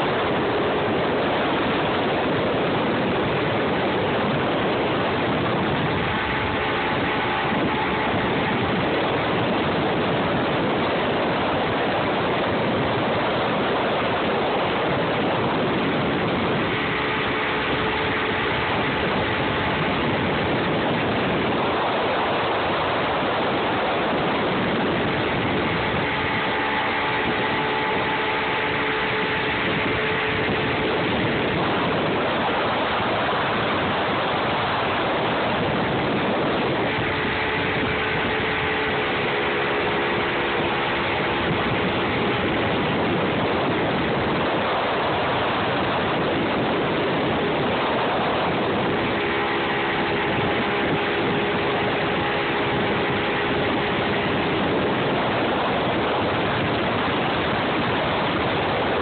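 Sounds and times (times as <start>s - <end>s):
churning wake water: 0.0s - 59.0s
outboard motor running: 0.0s - 59.0s
wind rushing: 0.0s - 59.0s.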